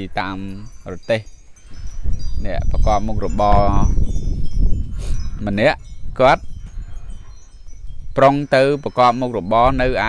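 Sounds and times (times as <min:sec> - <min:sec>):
man speaking: 0:00.0 - 0:01.3, 0:02.4 - 0:04.0, 0:08.2 - 0:10.0
faint high tinkling: 0:00.0 - 0:10.0.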